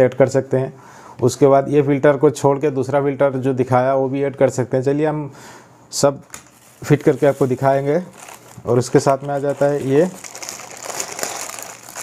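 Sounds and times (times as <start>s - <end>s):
plastic bag crinkling: 6.4s - 12.0s.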